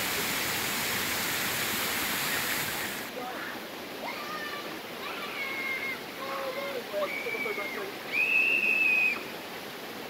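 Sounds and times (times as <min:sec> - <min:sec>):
waterfall rushing: 0:00.0 - 0:10.0
high whistle-like tone: 0:08.1 - 0:09.2.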